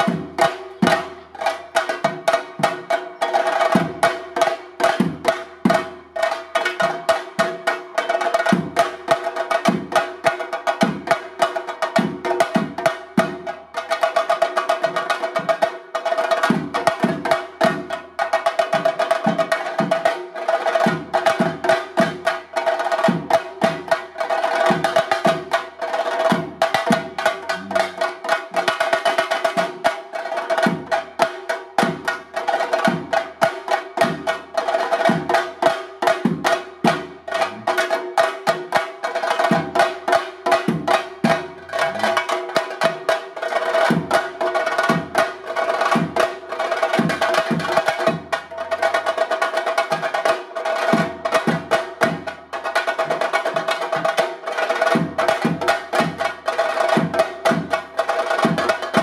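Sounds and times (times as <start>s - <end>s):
drums beaten with sticks: 0.0s - 59.0s.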